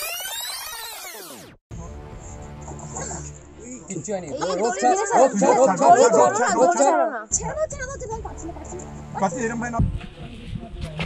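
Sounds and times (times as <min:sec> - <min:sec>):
steady low hum: 0:07.3 - 0:10.4.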